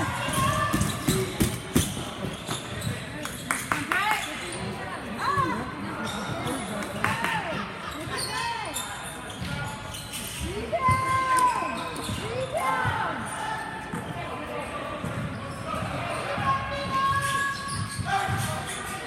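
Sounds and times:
sneakers squeaking on floor: 0:00.0 - 0:07.2, 0:07.8 - 0:19.0.

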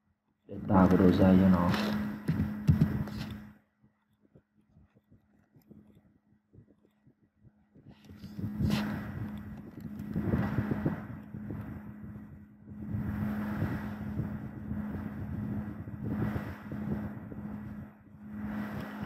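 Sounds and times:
low hum: 0:00.0 - 0:19.0
rumbling background noise: 0:00.5 - 0:03.6, 0:07.4 - 0:19.0.

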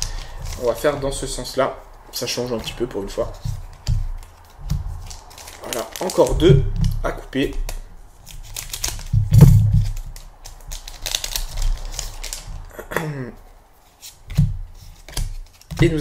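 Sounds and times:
sharp clicks handling packs: 0:00.0 - 0:01.1, 0:02.6 - 0:12.7
scissors snipping foil wrappers: 0:00.0 - 0:01.2, 0:03.1 - 0:06.3, 0:07.5 - 0:09.1, 0:09.8 - 0:12.7
wrappers crinkling: 0:00.0 - 0:12.8, 0:13.8 - 0:16.0.

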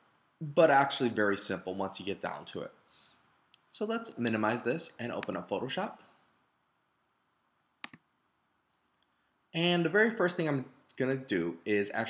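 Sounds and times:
computer mouse clicks: 0:07.8 - 0:08.1.

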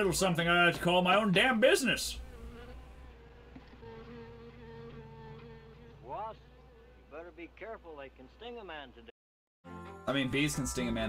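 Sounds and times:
wasps buzzing: 0:00.0 - 0:09.0.

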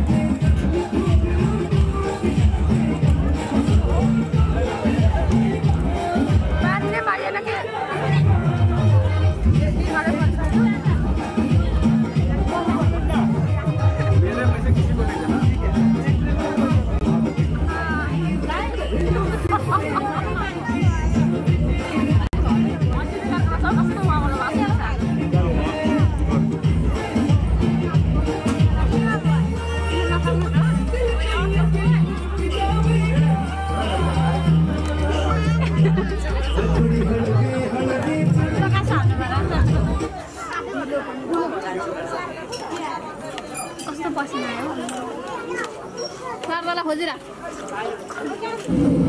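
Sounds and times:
background music with bass: 0:00.0 - 0:07.1, 0:07.9 - 0:40.2, 0:48.7 - 0:49.0
people chattering and laughing: 0:00.0 - 0:49.0.

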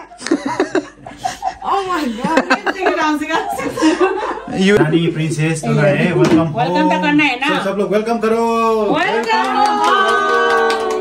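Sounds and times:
people chuckling and laughing: 0:00.0 - 0:05.3
people talking: 0:01.6 - 0:03.9.

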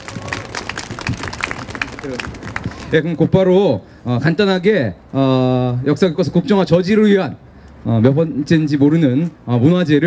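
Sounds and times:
audience applauding: 0:00.0 - 0:02.8.

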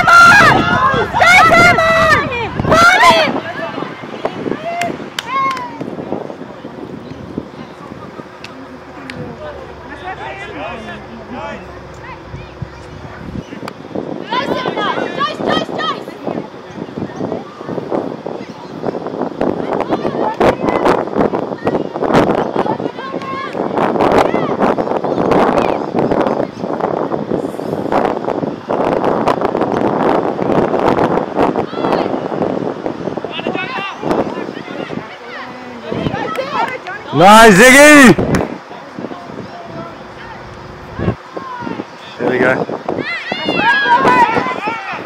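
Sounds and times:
distant voices shouting: 0:00.0 - 0:27.0, 0:30.3 - 0:45.0
outdoor background noise: 0:00.0 - 0:45.0.

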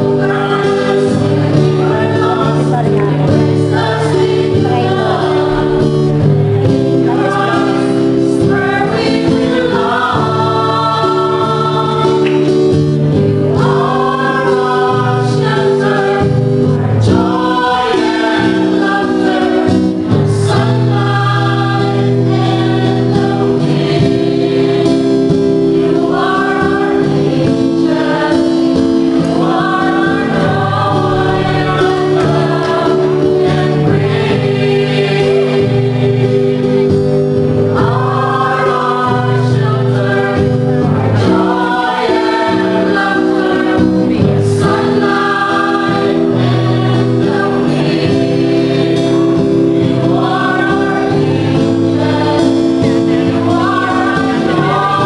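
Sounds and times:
acoustic guitar: 0:00.0 - 0:55.0
mixed choir singing: 0:00.0 - 0:55.0.

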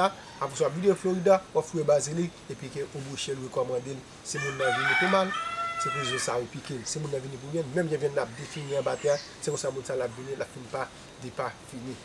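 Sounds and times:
man speaking: 0:00.0 - 0:12.0
rooster crowing: 0:04.3 - 0:06.4.

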